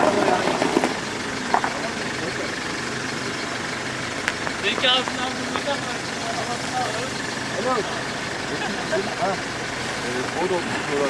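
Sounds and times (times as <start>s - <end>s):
off-road vehicle engines humming: 0.0s - 11.0s
voices: 0.0s - 11.0s.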